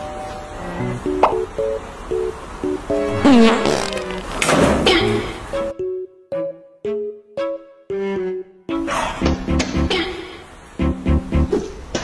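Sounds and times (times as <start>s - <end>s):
light background music: 0.0s - 10.2s, 10.8s - 11.7s
comic falling-pitch sound effect: 3.1s - 4.4s.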